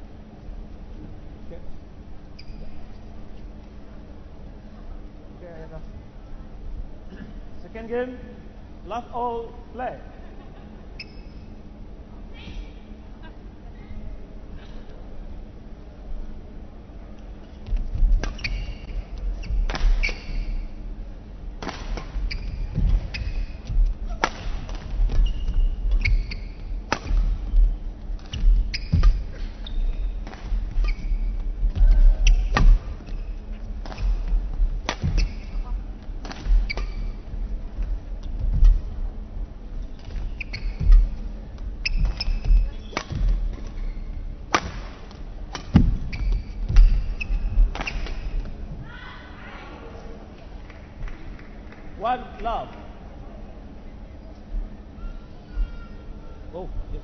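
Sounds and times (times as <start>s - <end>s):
shoes squeaking on court: 2.3s - 3.0s, 11.0s - 11.6s, 17.4s - 20.9s, 21.8s - 48.7s
racket striking shuttlecock: 19.7s - 20.6s, 24.1s - 27.5s, 33.8s - 35.6s, 41.9s - 43.8s, 44.5s - 48.4s
feet thudding: 21.7s - 48.7s.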